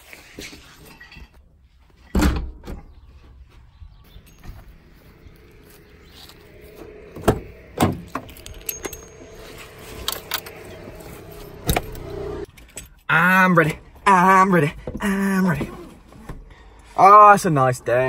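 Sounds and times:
car door opening clicks and clunks: 7.1s - 12.4s
keys jangling: 7.6s - 13.0s.

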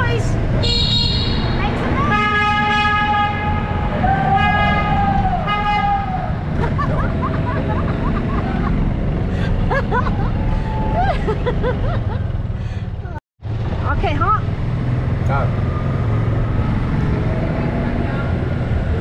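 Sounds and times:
cart rumbling: 0.0s - 19.0s
golf cart horn honking: 0.6s - 6.4s
riders whooping: 3.9s - 12.3s.

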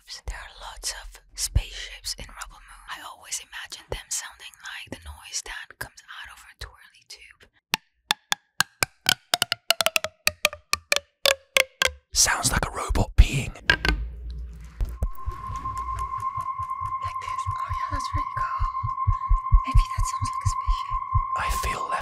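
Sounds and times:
plastic tube ridge clicks: 8.1s - 12.0s, 13.7s - 14.0s.

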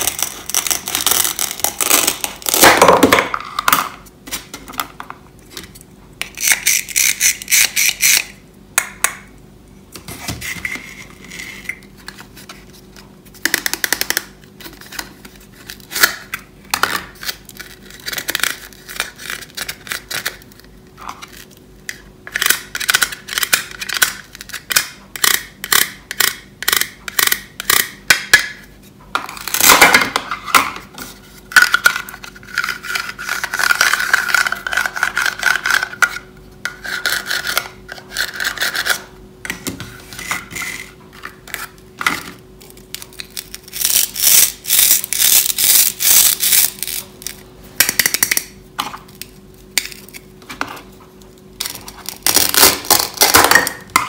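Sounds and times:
plastic toys clicking and rubbing: 31.5s - 39.0s, 42.6s - 48.5s
plastic toy pulled apart crackle: 43.0s - 47.0s.

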